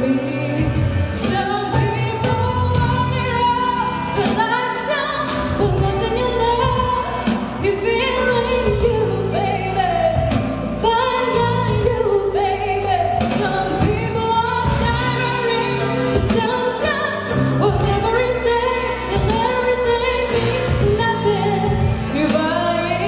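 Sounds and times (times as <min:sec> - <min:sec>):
instrumental accompaniment with beat: 0:00.0 - 0:23.0
woman singing a ballad: 0:00.0 - 0:23.0.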